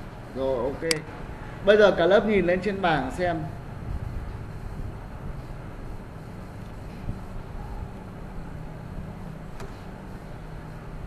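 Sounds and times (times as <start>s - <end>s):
room noise low hum: 0.0s - 11.0s
sharp click: 0.8s - 1.1s.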